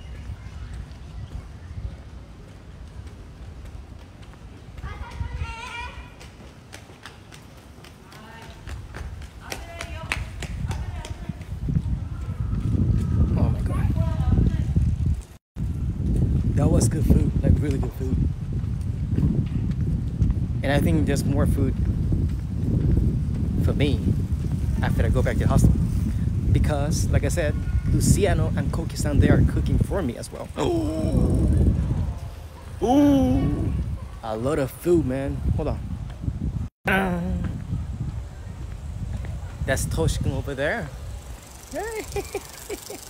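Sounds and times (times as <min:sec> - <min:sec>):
footsteps on pavement: 0:00.0 - 0:25.0, 0:37.2 - 0:39.7
low rumble on microphone: 0:10.6 - 0:34.1, 0:35.3 - 0:41.2
man's voice: 0:30.5 - 0:31.6, 0:36.9 - 0:37.6.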